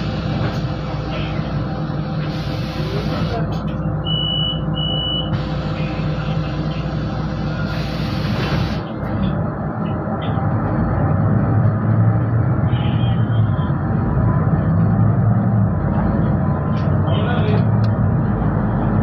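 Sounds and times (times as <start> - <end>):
bus engine running: 0.0 - 19.0
road noise: 0.0 - 19.0
short high beeps: 4.0 - 5.4
air hiss: 7.7 - 8.8.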